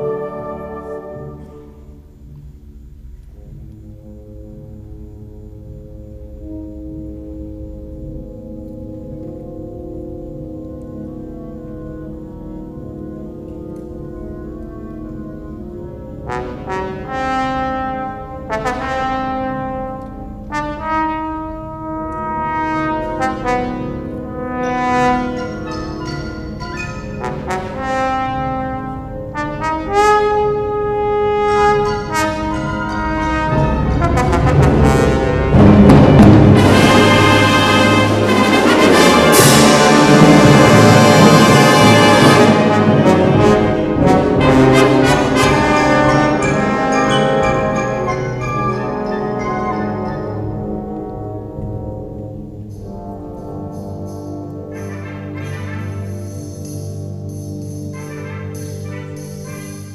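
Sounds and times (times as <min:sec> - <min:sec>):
brass phrases: 0:00.0 - 0:02.3, 0:03.4 - 0:59.9
wind band playing: 0:00.0 - 0:59.9.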